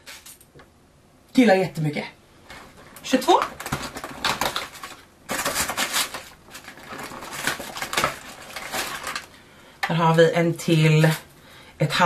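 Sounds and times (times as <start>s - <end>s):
packaging crackling: 2.5s - 9.4s
cardboard tearing: 3.3s - 9.3s.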